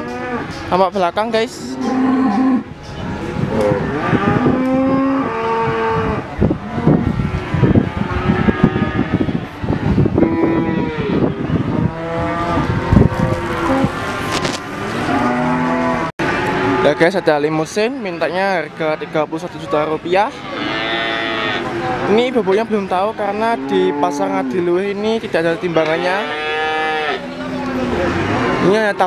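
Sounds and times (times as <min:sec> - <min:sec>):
cattle mooing: 0:01.7 - 0:02.7, 0:03.5 - 0:09.5, 0:10.2 - 0:17.2, 0:20.3 - 0:22.6, 0:23.4 - 0:24.6, 0:25.6 - 0:29.0.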